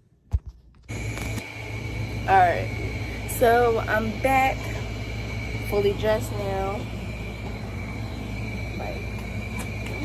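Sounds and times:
air conditioner humming: 0.0s - 10.0s.

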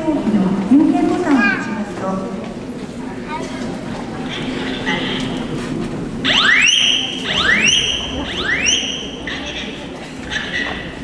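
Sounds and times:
fire alarm whooping: 6.2s - 9.6s.

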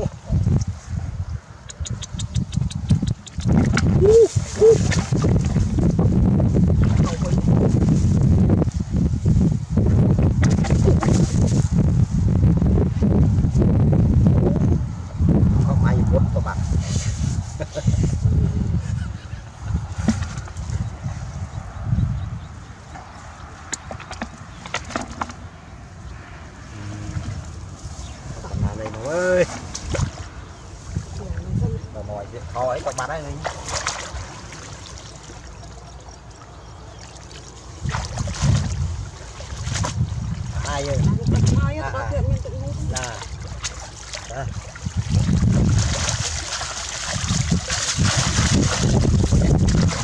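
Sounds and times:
steady low rumble: 0.0s - 23.9s
wind rumble on microphone: 0.0s - 50.0s
fish thrashing in a net: 3.6s - 5.8s, 33.3s - 40.6s, 42.9s - 50.0s.

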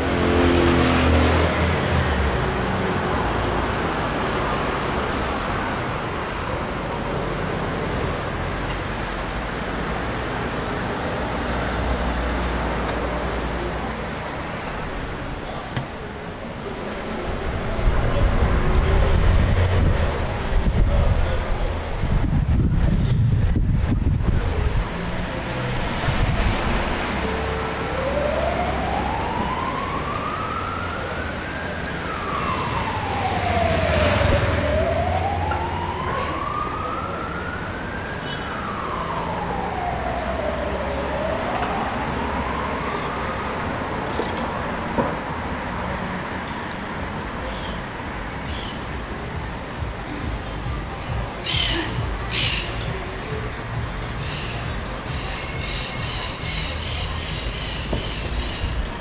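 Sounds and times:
rumble of passing traffic: 0.0s - 59.0s
street traffic: 0.0s - 59.0s
emergency vehicle siren wailing: 23.5s - 45.7s, 47.3s - 59.0s.

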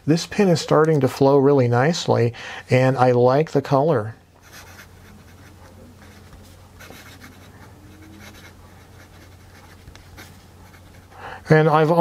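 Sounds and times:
fountain pen scratching on paper: 4.4s - 11.1s.

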